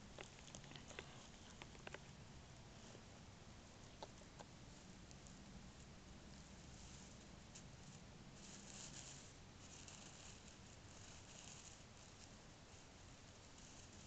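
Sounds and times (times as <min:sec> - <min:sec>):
faint hiss: 0:00.0 - 0:14.0
soft rustling: 0:00.0 - 0:14.0.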